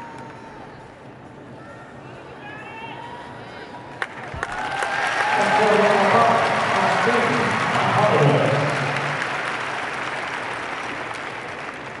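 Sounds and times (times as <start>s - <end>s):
audience applauding: 4.0s - 12.0s.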